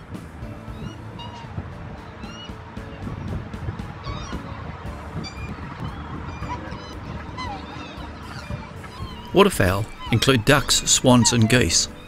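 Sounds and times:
background music: 0:00.0 - 0:12.0
swans calling: 0:00.4 - 0:12.0.

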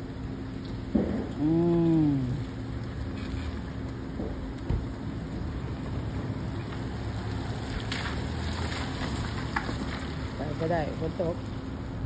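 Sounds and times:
rain on asphalt: 0:00.0 - 0:12.0.

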